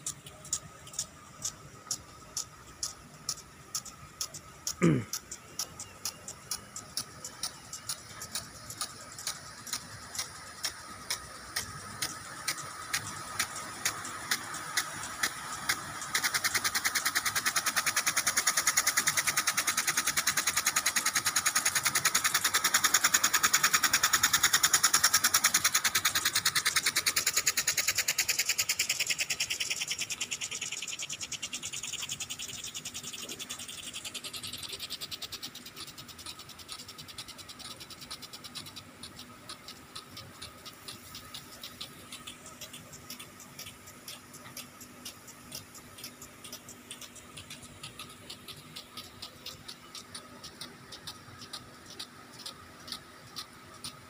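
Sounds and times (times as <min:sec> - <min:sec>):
sprinkler arm ticking: 0:00.0 - 0:54.0
sprinkler spray hissing: 0:00.0 - 0:54.0.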